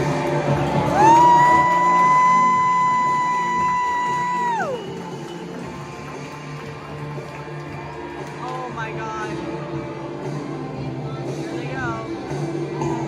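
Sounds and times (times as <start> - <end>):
show music: 0.0 - 13.0.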